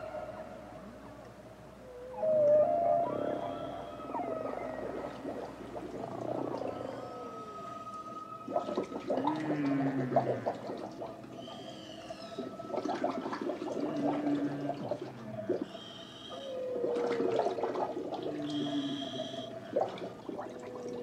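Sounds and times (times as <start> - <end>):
whale moaning calls: 0.0 - 21.0
whale clicks: 1.2 - 21.0
high arching whale cries: 1.8 - 21.0.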